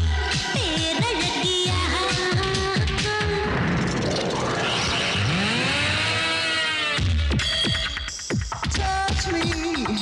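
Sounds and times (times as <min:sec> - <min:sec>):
song backing music: 0:00.0 - 0:10.0
synthesized tone sweeping in pitch: 0:03.4 - 0:07.8.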